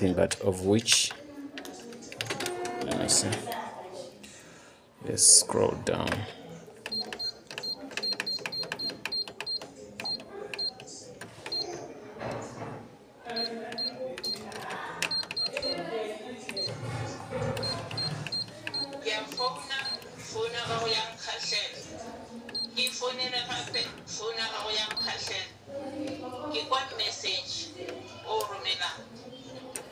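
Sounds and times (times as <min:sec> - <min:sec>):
people talking: 0:05.1 - 0:29.9.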